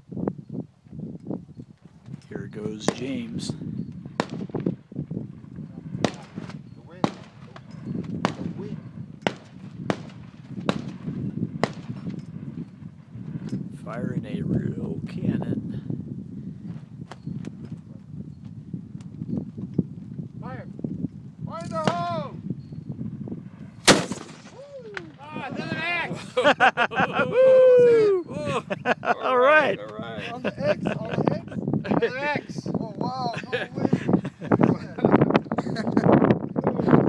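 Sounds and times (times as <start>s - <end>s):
people talking: 2.3s - 3.5s, 13.8s - 15.6s, 24.6s - 26.2s, 28.1s - 35.8s
cannon shot: 6.0s - 7.5s, 8.2s - 8.6s, 9.2s - 12.0s, 23.8s - 25.2s
gunshots: 6.0s - 7.6s, 8.2s - 12.0s, 23.8s - 24.6s.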